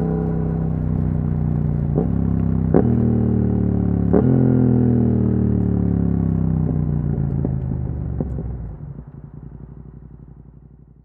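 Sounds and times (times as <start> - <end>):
motorcycle engine revs falling: 0.0 - 10.3.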